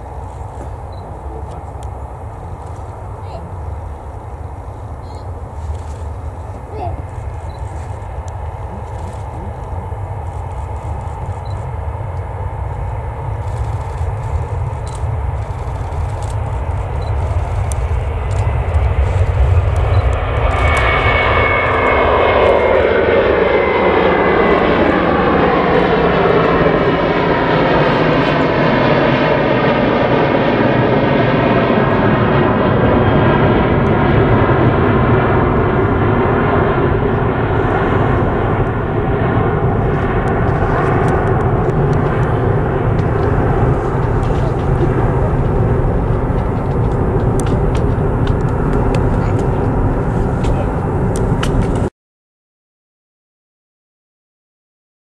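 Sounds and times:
jet airliner roar: 0.0 - 51.9.

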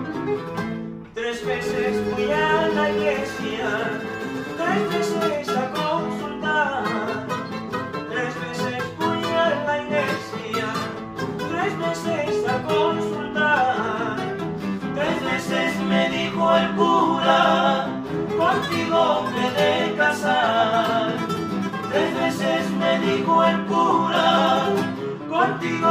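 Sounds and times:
acoustic guitars strumming and picking: 0.0 - 25.9
men singing: 1.2 - 25.9.

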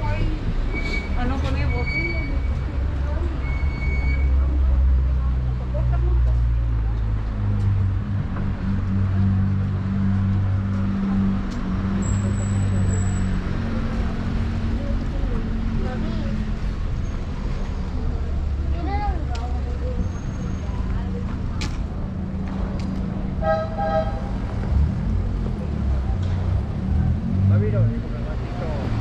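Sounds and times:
faint voices of passers-by: 0.0 - 29.0
traffic engine hum: 0.0 - 29.0
car horn tooting: 23.4 - 24.4.

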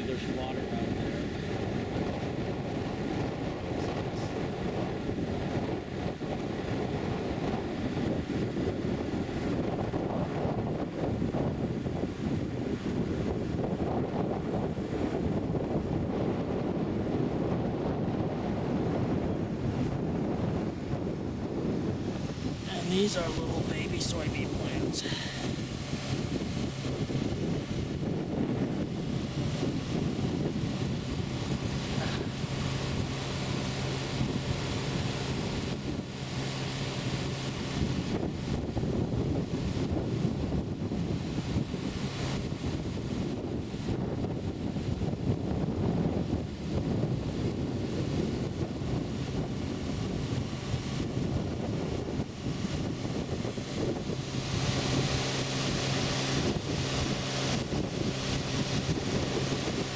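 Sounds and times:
steady low hum: 0.0 - 59.9
wind buffeting microphone: 0.0 - 59.9.

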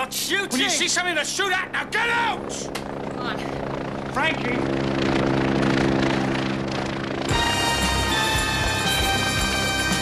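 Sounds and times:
helicopter overhead: 0.0 - 10.0
film score music with held notes: 7.3 - 10.0.

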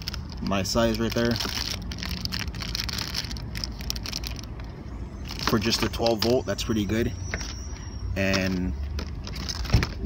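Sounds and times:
plastic bag crinkling: 0.0 - 6.4
low background rumble: 0.0 - 10.0.

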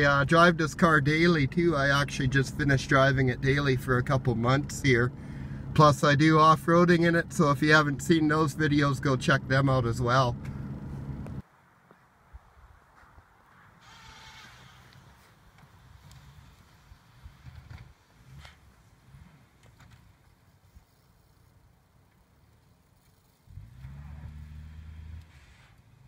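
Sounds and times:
distant car engine labouring: 0.0 - 11.4, 23.5 - 26.0.

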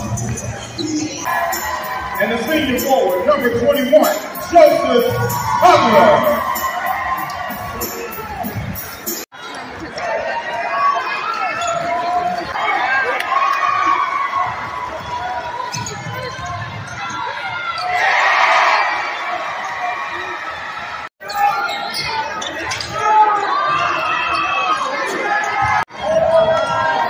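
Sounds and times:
crowd chatter: 0.0 - 27.0
voices shouting: 1.2 - 8.9, 16.4 - 27.0.

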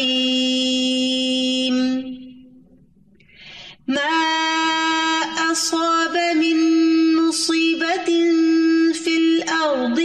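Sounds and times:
melodic recitation: 0.0 - 2.8, 3.9 - 10.0
reciter breathing in: 3.2 - 3.8.

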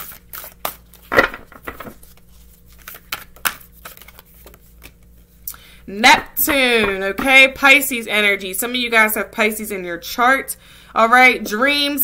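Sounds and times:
cards being shuffled: 0.0 - 5.3.

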